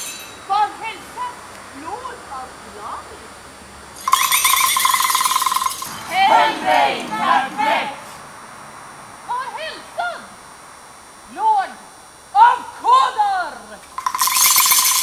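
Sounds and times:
loud buzzing trill: 0:00.0 - 0:00.6, 0:03.9 - 0:06.8, 0:13.9 - 0:15.0.

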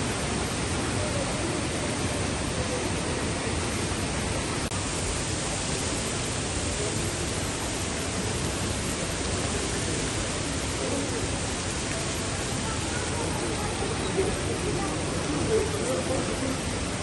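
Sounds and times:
steady atrium background hiss: 0:00.0 - 0:17.0.

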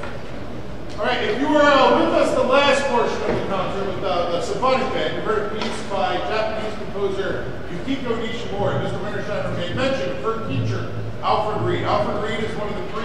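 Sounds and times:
room noise hiss: 0:00.0 - 0:13.0
man speaking in echoing hall: 0:00.9 - 0:13.0.

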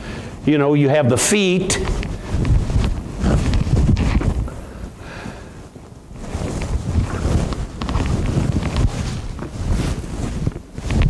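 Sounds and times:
clothing rubbing on microphone: 0:01.1 - 0:11.0.

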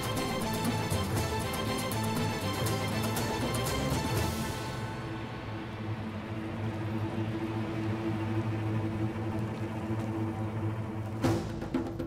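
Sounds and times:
low sustained music drone: 0:00.0 - 0:11.4.

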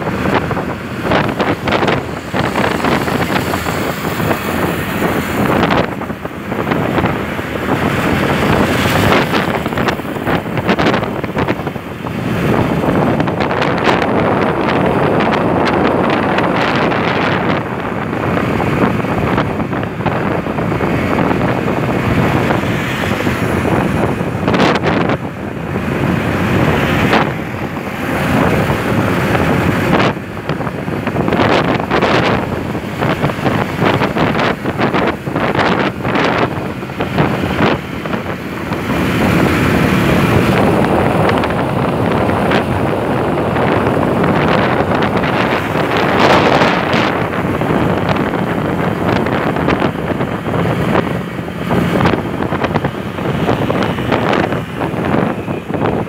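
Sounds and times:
motorcycle engine running: 0:00.0 - 0:56.0
wind buffeting microphone: 0:00.0 - 0:56.0.

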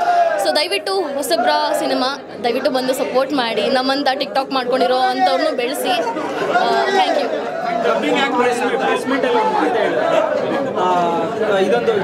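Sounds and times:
chatter of voices: 0:00.0 - 0:12.0
woman talking: 0:00.4 - 0:06.0.

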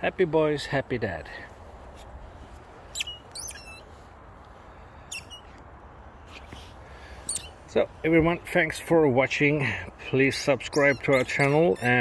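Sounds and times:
squeaky dog toy squeaking: 0:03.0 - 0:03.8, 0:10.7 - 0:12.0.

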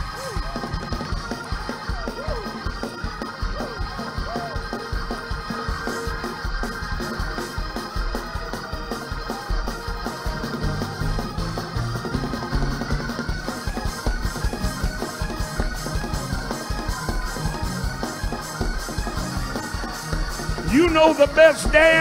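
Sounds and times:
fast steady beat: 0:00.0 - 0:22.0
organ keyboard chords: 0:00.0 - 0:22.0.

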